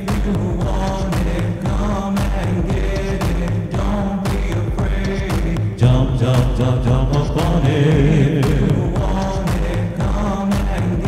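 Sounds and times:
backing track with drums and bass: 0:00.0 - 0:11.0
man singing into microphone: 0:00.0 - 0:11.0.

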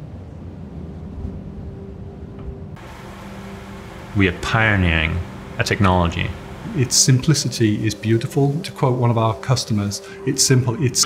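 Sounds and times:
ship rumble with hum: 0:00.0 - 0:09.4
hiss of wind and water: 0:02.8 - 0:11.0.

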